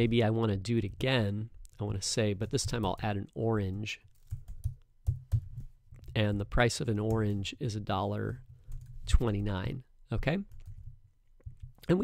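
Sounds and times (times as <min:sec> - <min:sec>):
typing on computer keyboard: 0:04.1 - 0:05.7.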